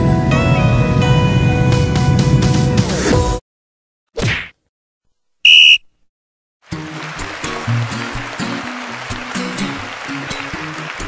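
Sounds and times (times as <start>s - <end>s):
shrill whistle tone: 5.4s - 5.9s.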